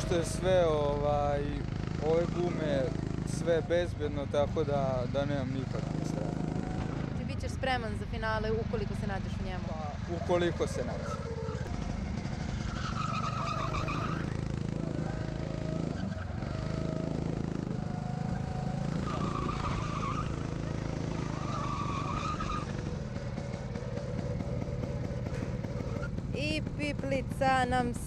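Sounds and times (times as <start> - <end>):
go-kart engines droning: 0.0 - 28.0
tyre squeals: 12.4 - 23.6, 24.4 - 26.2.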